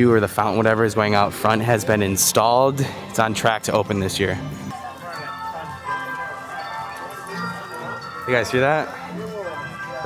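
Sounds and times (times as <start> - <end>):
holiday music over loudspeakers: 0.0 - 10.0.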